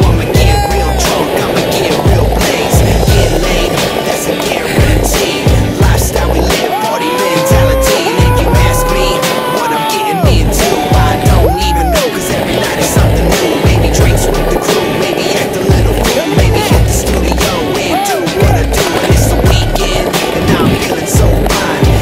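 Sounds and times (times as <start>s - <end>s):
hip-hop beat with synth lines: 0.0s - 22.0s.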